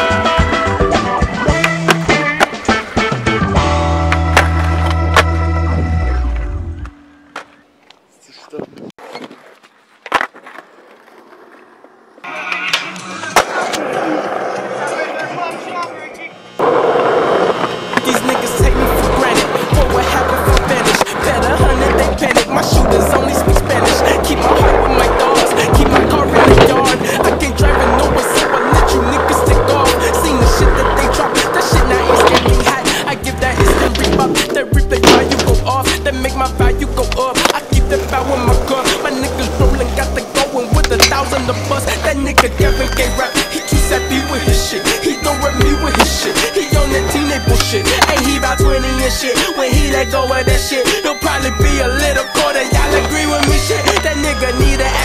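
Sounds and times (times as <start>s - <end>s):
skateboard wheels and clacks on concrete: 0.0s - 5.6s, 8.7s - 55.0s
music with heavy bass beat: 18.6s - 38.7s, 39.4s - 55.0s.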